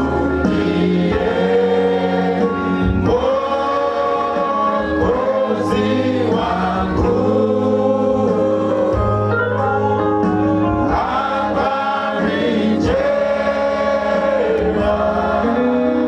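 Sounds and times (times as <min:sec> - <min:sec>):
congregation singing a hymn: 0:00.0 - 0:09.6, 0:10.2 - 0:16.0.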